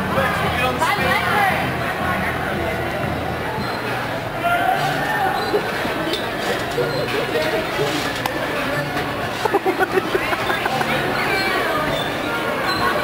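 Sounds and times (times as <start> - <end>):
indistinct voices and chatter: 0.0 - 13.0.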